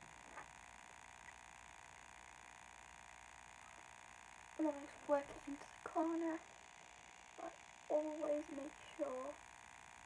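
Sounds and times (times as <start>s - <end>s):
girl speaking: 4.6s - 6.5s, 7.4s - 9.4s.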